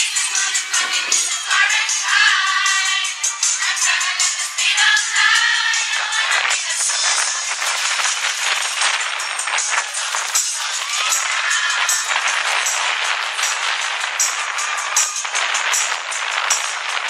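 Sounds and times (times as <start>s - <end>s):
children's choir singing: 0.0s - 17.0s
crisp high beat: 0.0s - 17.0s
music through a loudspeaker: 0.0s - 17.0s.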